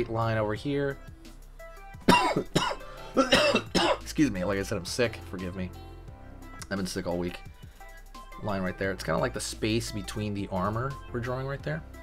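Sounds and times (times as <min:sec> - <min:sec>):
man coughing: 0:02.1 - 0:04.1.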